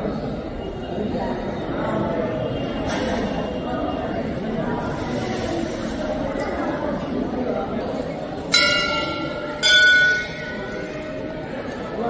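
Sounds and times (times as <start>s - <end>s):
background chatter of voices: 0.0s - 12.0s
temple bell ringing: 8.4s - 12.0s.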